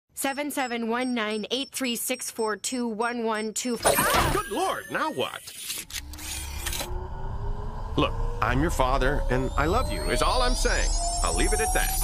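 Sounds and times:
rising mechanical whine: 0:04.4 - 0:12.0
low hum: 0:05.8 - 0:12.0.

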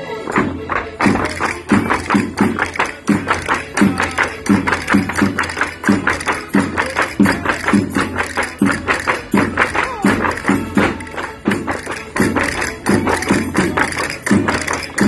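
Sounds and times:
folk dance music: 0:00.0 - 0:15.0
sharp percussion strikes: 0:00.0 - 0:15.0.

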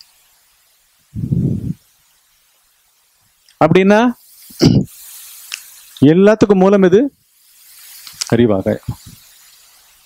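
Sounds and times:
breathy hiss close to mic: 0:00.0 - 0:10.0
man talking: 0:03.6 - 0:04.8, 0:06.0 - 0:07.2, 0:08.2 - 0:09.1.

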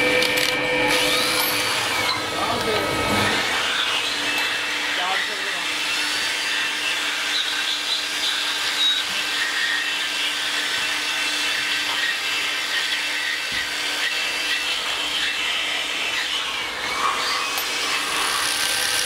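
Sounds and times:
power tool motor whining: 0:00.0 - 0:19.0.

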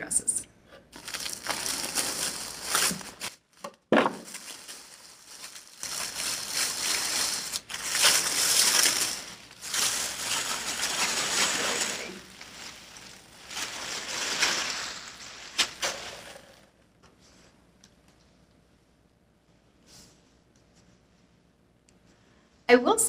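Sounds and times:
wrapping paper rustling: 0:00.9 - 0:16.6.

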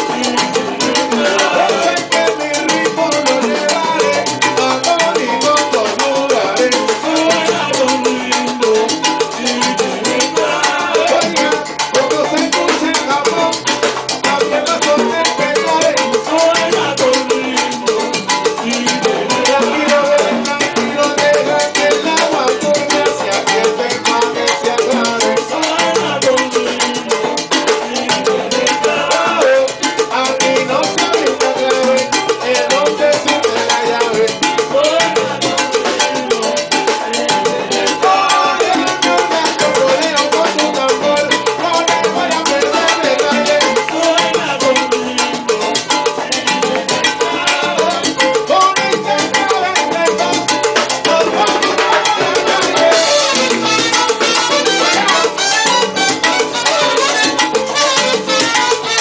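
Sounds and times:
congas: 0:00.0 - 0:59.0
salsa band playing: 0:00.0 - 0:59.0.

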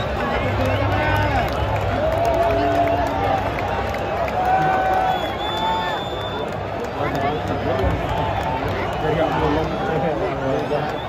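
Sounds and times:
noise of packed stands: 0:00.0 - 0:11.0.

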